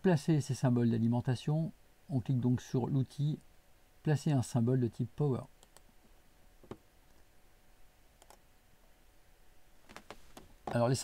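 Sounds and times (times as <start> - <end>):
computer mouse clicks: 5.6 - 5.9, 8.2 - 8.4.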